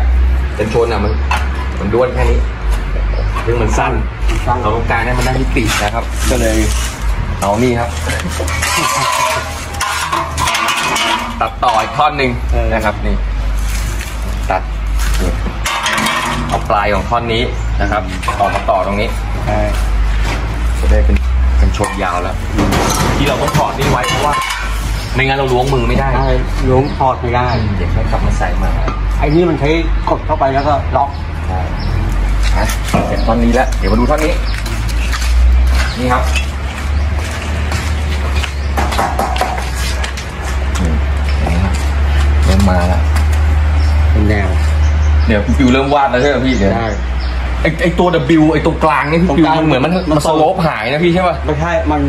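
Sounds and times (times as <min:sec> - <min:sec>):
sheet metal scraping and clattering: 0:03.3 - 0:12.1, 0:15.0 - 0:16.7, 0:21.8 - 0:26.0.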